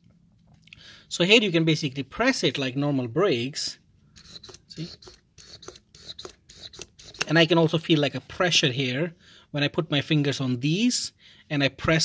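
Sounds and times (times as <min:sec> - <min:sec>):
piston scraping and clicking: 0:04.1 - 0:07.4.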